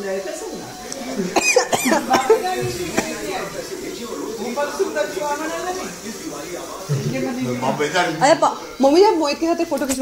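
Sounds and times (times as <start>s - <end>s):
people's voices in a room: 0.0s - 10.0s.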